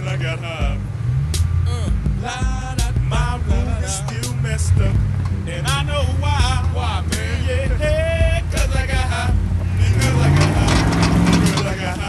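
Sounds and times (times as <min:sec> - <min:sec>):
engine revving under load: 0:00.0 - 0:12.0
person singing: 0:01.7 - 0:12.0
tyres spinning in dirt: 0:09.7 - 0:12.0.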